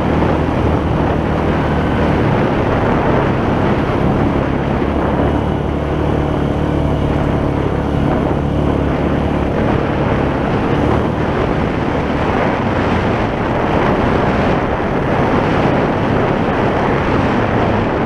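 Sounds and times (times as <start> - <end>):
constant rushing noise: 0.0 - 18.0
quad bike engine running: 0.0 - 18.0.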